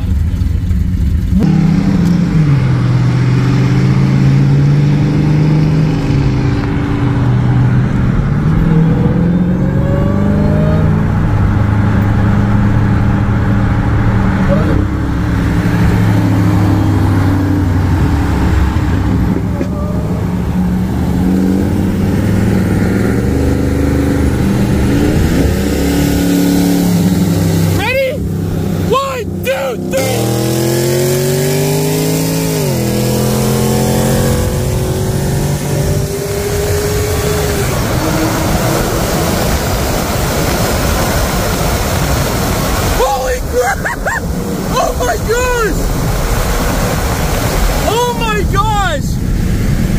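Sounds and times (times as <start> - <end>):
car engine accelerating hard: 0.0 - 49.9
road and wind noise: 0.0 - 49.9.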